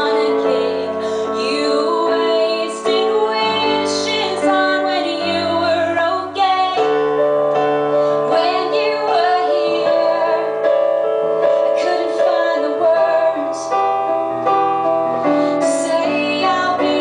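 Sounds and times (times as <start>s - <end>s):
woman singing: 0.0s - 7.0s, 8.2s - 10.7s, 11.6s - 13.8s, 15.5s - 17.0s
keyboard chords: 0.0s - 17.0s.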